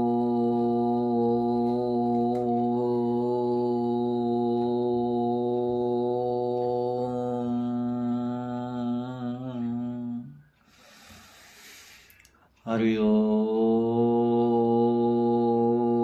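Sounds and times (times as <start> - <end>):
man chanting om: 0.0 - 10.4, 12.6 - 16.0.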